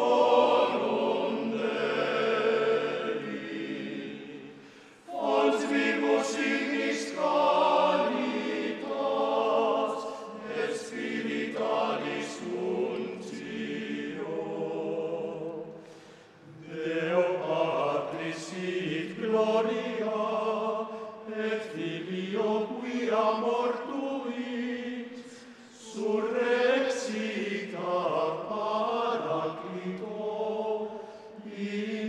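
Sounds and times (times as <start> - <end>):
choir singing: 0.0 - 32.0.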